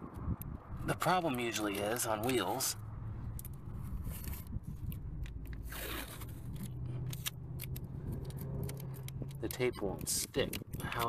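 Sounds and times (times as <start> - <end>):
low steady hum: 0.0 - 11.0
tape crackles and scrapes: 1.0 - 11.0
masking tape pulled from roll: 3.8 - 9.2.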